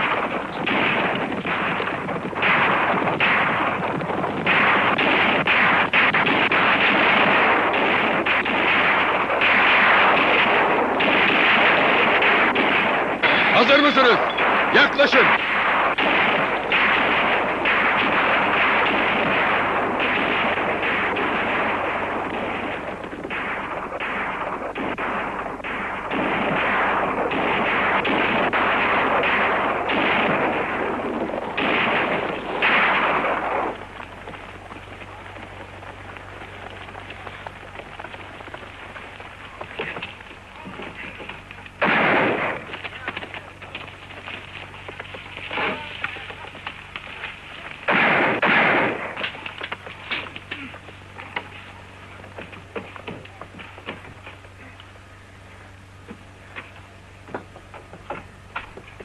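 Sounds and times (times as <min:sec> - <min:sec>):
heavy continuous gunfire: 0:00.0 - 0:54.8.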